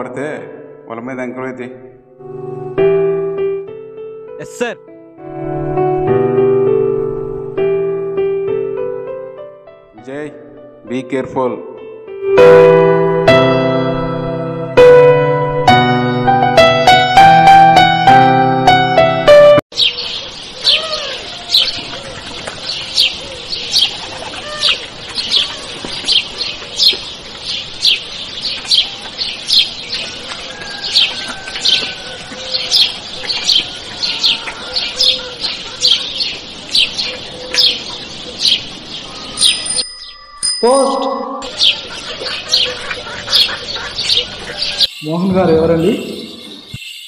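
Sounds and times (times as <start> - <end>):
songbird chirping: 19.7 - 47.0.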